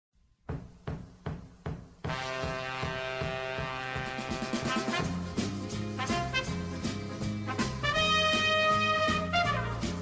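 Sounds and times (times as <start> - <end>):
low drum thumps: 0.5 - 5.6.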